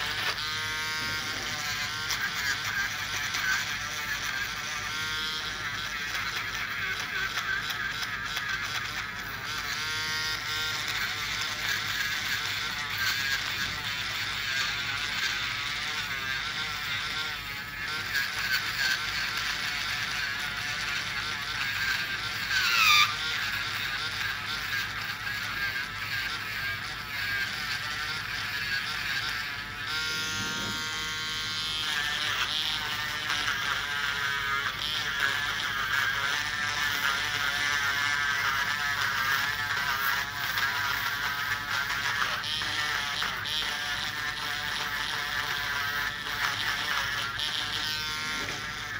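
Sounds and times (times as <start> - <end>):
nail drill whining: 0.0 - 48.9.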